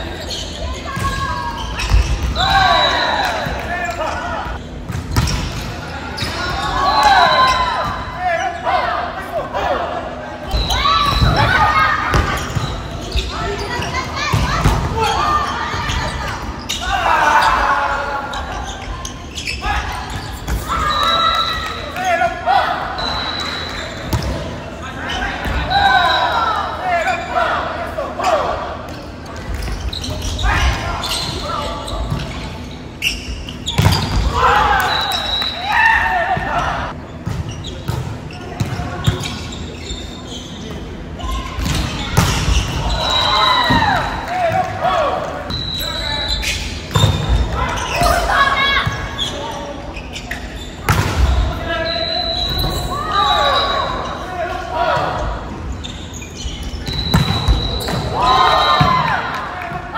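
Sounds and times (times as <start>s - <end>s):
players shouting calls: 0.0s - 4.6s, 5.8s - 28.9s, 33.6s - 37.0s, 41.0s - 49.9s, 50.6s - 56.2s, 56.8s - 59.9s.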